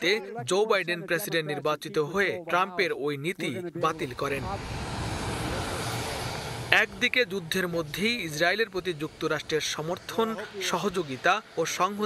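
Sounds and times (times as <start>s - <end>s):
man's voice: 0.0s - 4.7s
jet engines running: 3.9s - 12.0s.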